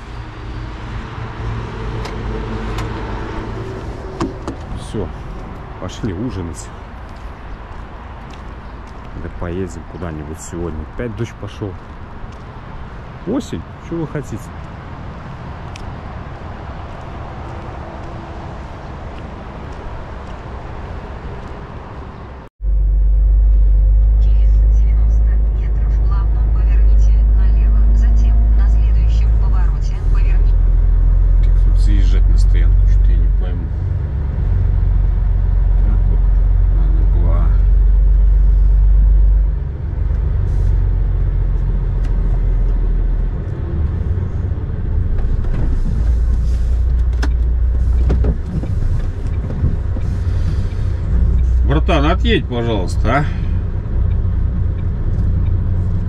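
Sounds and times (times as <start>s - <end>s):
truck diesel engine drone: 0.0s - 7.4s, 22.6s - 56.0s.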